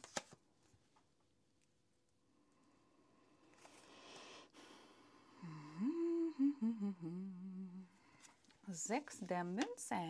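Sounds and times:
cards rustling: 0.0s - 0.4s
woman humming: 5.4s - 8.0s.

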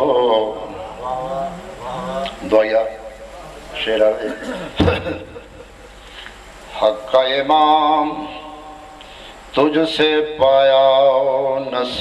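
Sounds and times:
man chanting melodically: 0.0s - 4.8s, 6.7s - 12.0s.

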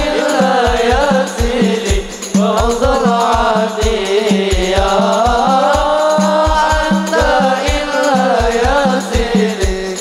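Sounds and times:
deep drum beat: 0.0s - 10.0s
frame drums: 0.0s - 10.0s
person singing wavering melody: 0.0s - 10.0s.

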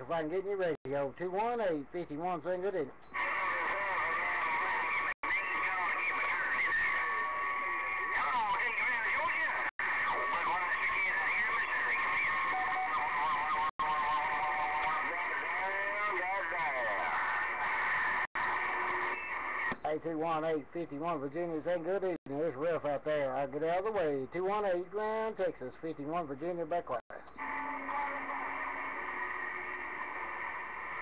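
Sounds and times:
radio band noise: 0.0s - 31.0s
radio whistling tones: 3.0s - 19.9s, 27.1s - 31.0s
garbled warbling radio voices: 3.1s - 20.0s.

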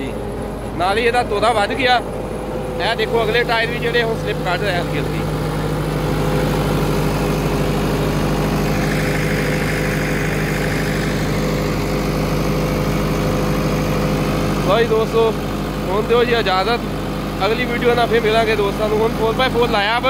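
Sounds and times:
high whine: 0.0s - 20.0s
tractor diesel engine under load: 0.0s - 20.0s.

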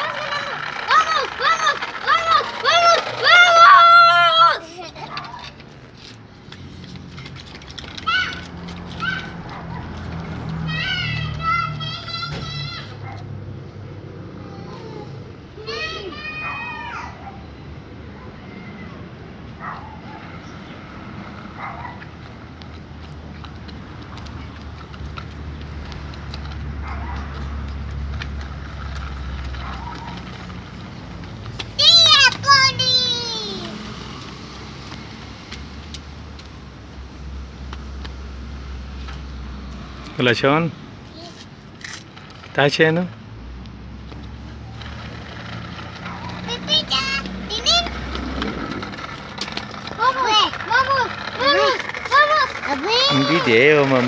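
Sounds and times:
child squealing: 0.0s - 5.0s, 8.0s - 9.4s, 14.4s - 17.2s, 31.8s - 33.8s
footsteps on pavement: 0.0s - 14.0s, 19.6s - 54.0s
street noise rumble: 0.0s - 54.0s.

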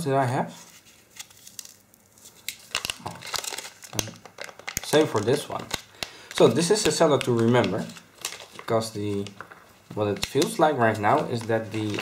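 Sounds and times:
plastic bag crinkling: 1.0s - 12.0s.

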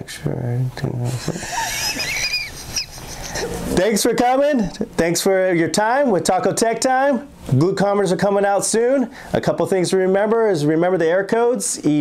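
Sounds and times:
man laughing: 1.1s - 3.8s.

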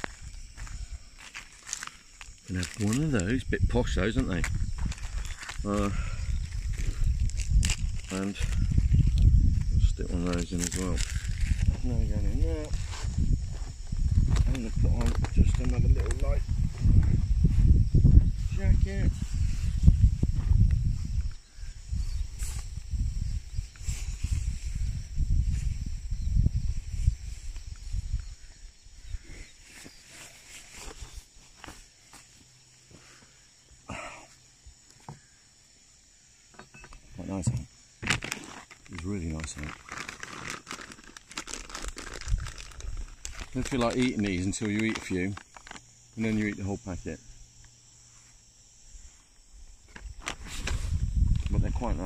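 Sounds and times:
jacket rustling and crinkling: 0.0s - 17.9s, 38.0s - 46.6s, 49.9s - 51.7s.

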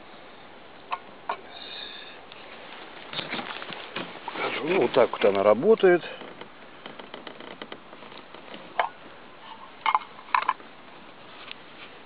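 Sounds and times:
twig fire crackling: 2.3s - 8.9s.

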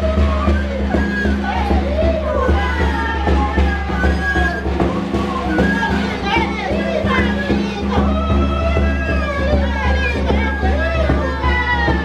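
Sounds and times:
flute tone: 0.0s - 12.0s
frame drum beat: 0.0s - 12.0s
high voices calling out: 0.0s - 12.0s.

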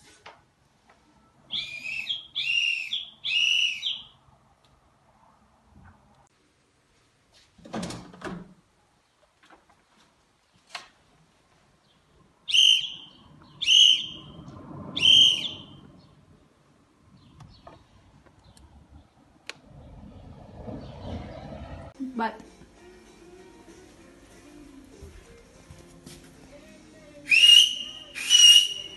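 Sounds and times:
whistle-like calls: 1.5s - 4.2s, 12.5s - 14.4s, 15.0s - 15.8s, 27.3s - 28.9s.

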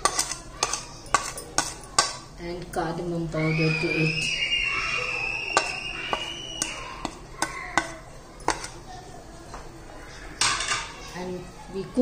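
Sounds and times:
metal spoon clinking on pan: 0.0s - 2.3s, 5.6s - 8.8s
spoon scraping pan: 0.0s - 2.4s, 5.5s - 8.9s.

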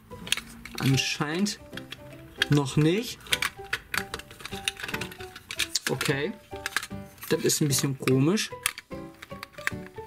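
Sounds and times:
plastic toy parts clicking: 0.2s - 10.0s.

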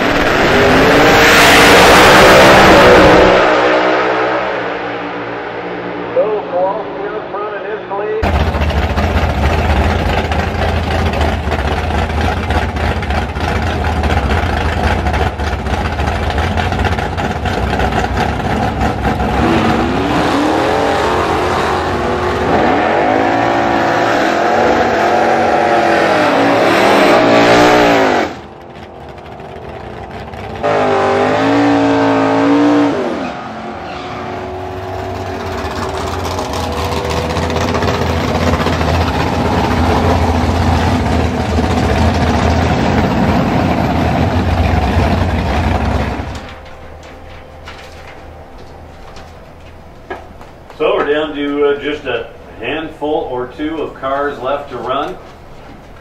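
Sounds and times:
racing engines revving: 0.0s - 46.5s.

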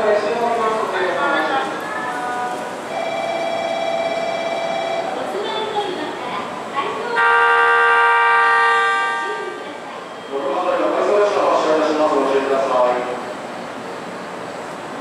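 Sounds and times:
voices on platform: 0.0s - 15.0s
train horn: 7.2s - 9.6s.

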